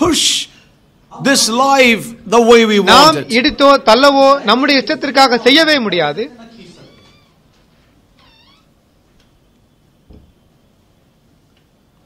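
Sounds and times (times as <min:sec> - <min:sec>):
high-pitched animal call: 0:08.2 - 0:08.8.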